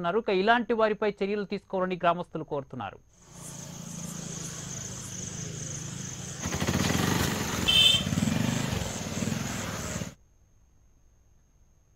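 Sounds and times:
small engine pulsing: 3.2s - 10.2s.

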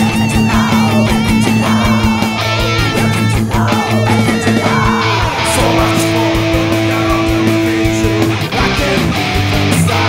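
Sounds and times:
electric guitar line: 0.0s - 10.0s
heavy metal band playing: 0.0s - 10.0s.

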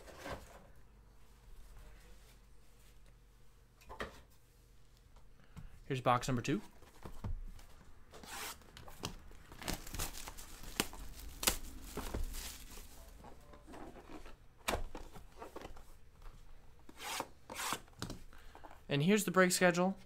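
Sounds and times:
plastic shrink-wrap tearing: 9.6s - 12.7s.

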